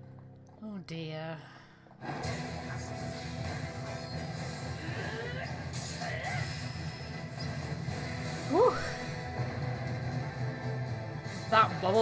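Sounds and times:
low background music: 0.0 - 12.0.

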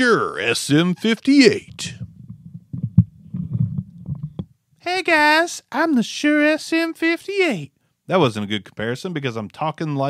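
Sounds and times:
microphone handling rumbles: 1.4 - 4.6.

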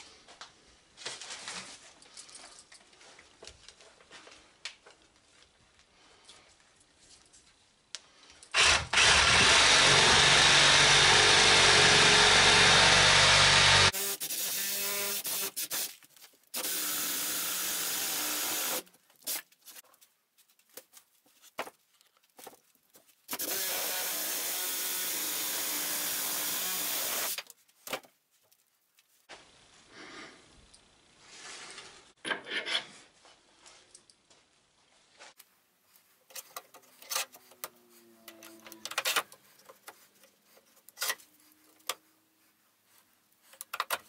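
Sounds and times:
cordless power tool cutting root: 8.6 - 15.8, 16.6 - 18.9, 23.3 - 27.4.

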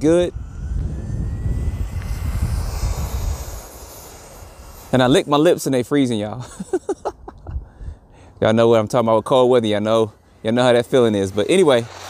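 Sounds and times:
wind rumble on microphone: 0.0 - 5.3, 7.1 - 8.2
electric motor whine: 0.0 - 7.1, 8.8 - 12.0.

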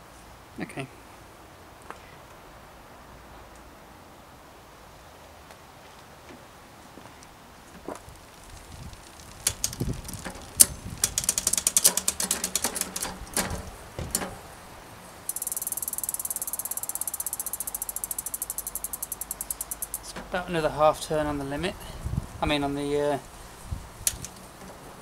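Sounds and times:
bicycle chain clattering and clicking: 8.2 - 14.5, 15.3 - 20.2
freehub ticking rapidly: 8.3 - 13.8, 15.3 - 20.2.

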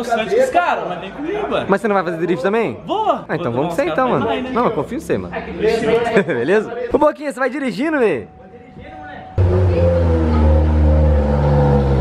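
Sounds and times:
car engine idling: 9.4 - 12.0.

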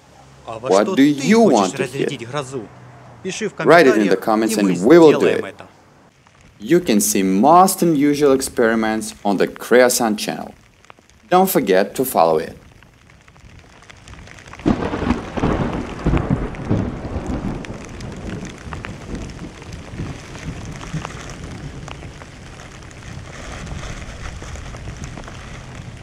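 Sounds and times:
steady rain: 0.0 - 26.0
raindrops ticking on camera: 6.1 - 26.0
thunder rolling: 13.4 - 26.0.

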